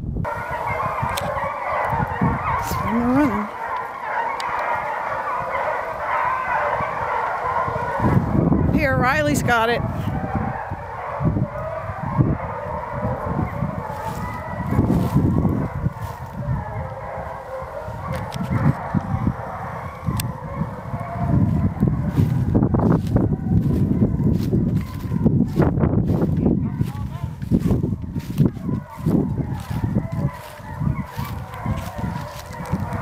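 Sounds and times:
hounds baying: 0.3 - 33.0
low rumbling on microphone: 6.4 - 33.0.

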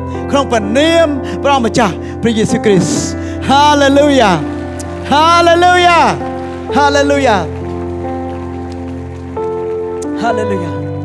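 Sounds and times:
person preaching: 0.2 - 4.5, 5.1 - 7.5.

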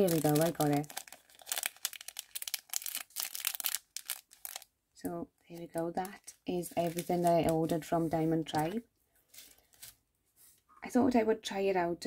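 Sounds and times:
plastic bag crinkling: 0.0 - 4.7, 5.5 - 10.0.

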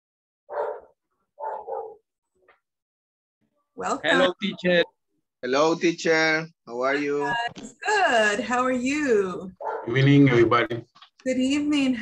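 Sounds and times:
dog barking: 0.5 - 2.1, 9.6 - 10.0.

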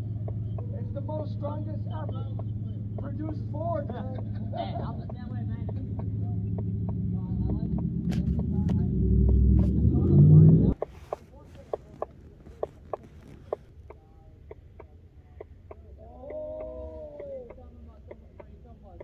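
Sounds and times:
car engine rumbling: 0.0 - 19.0.

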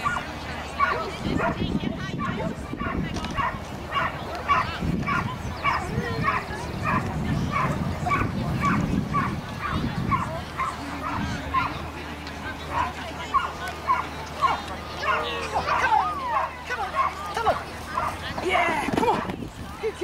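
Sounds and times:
dog barking in high yips: 2.8 - 11.8.

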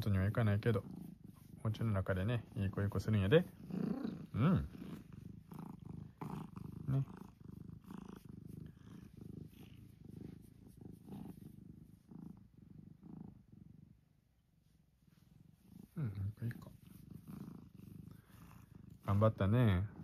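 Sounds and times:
cat purring: 0.0 - 20.0.

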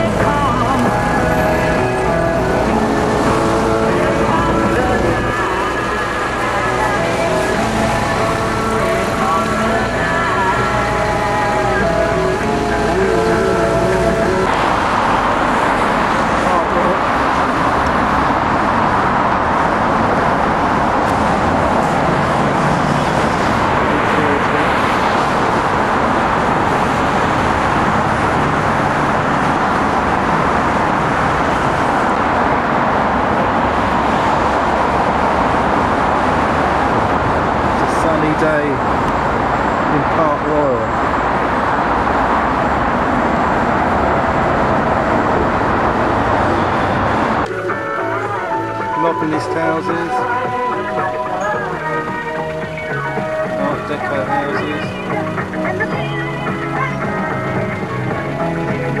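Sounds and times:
music: 0.0 - 14.6, 47.4 - 59.0
road noise from moving car: 0.0 - 59.0.

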